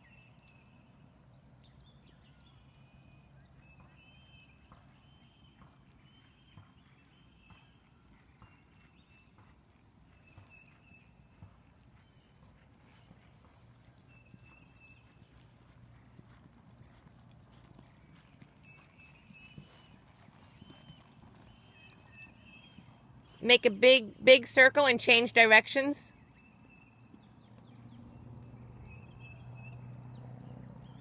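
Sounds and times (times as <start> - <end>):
horse hoofbeats on dirt: 0.0 - 31.0.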